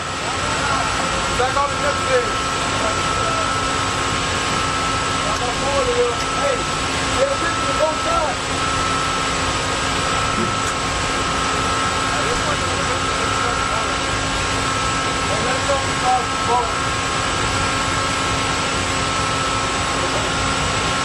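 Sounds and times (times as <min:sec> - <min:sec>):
ship machinery drone: 0:00.0 - 0:21.0.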